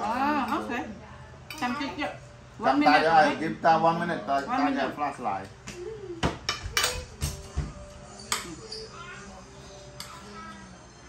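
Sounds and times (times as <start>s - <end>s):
cutlery clinking on plates: 6.3s - 9.0s.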